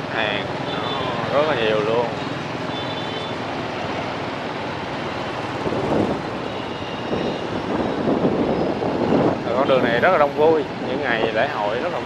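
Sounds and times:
city street traffic with motorbikes: 0.0s - 12.0s.

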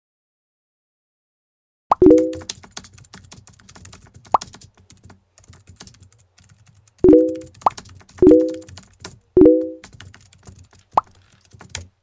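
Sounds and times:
keyboard typing clicks: 1.9s - 11.9s.

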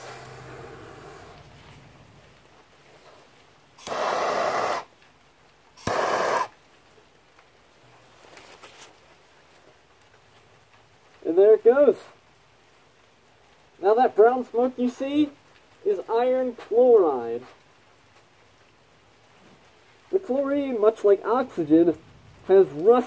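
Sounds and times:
torch lighter hissing: 0.0s - 1.5s, 3.8s - 4.9s, 5.8s - 6.5s.

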